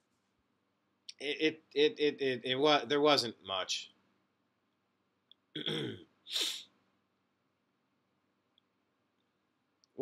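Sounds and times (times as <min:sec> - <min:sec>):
man's throaty vocal sound: 0:05.6 - 0:06.6.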